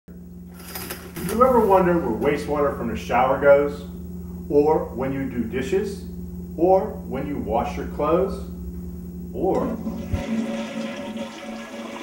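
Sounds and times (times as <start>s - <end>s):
toilet flushing: 9.7s - 12.0s.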